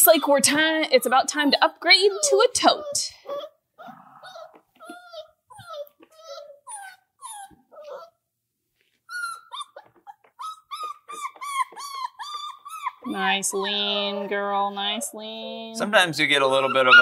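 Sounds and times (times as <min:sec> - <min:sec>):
puppies whining: 0:00.0 - 0:08.2, 0:09.0 - 0:15.8, 0:16.4 - 0:17.0.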